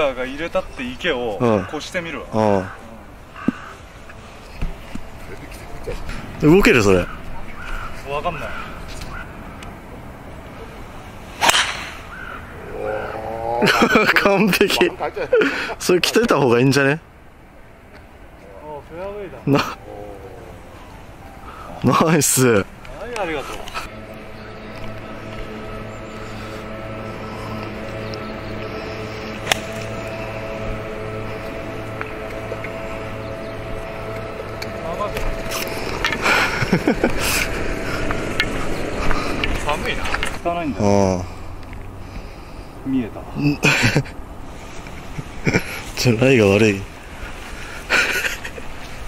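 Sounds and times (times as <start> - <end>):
people talking: 0.0 - 3.0, 5.2 - 8.5, 12.8 - 17.0, 18.4 - 20.6, 21.8 - 23.9, 34.7 - 35.6, 39.6 - 41.3, 46.0 - 46.9
golf club hitting ball: 11.4 - 12.1, 29.4 - 30.0
drawn-out rising voice: 12.6 - 13.7, 19.7 - 21.8
background music: 19.3 - 40.3.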